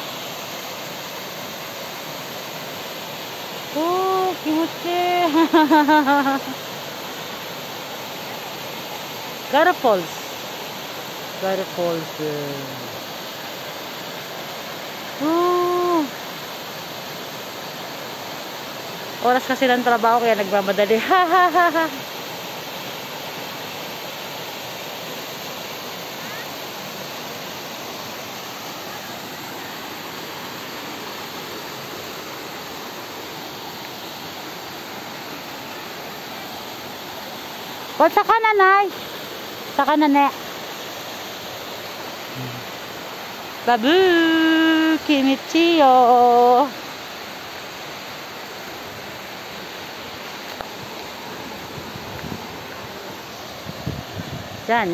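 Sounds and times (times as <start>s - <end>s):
waterfall and stream rushing: 0.0s - 54.9s.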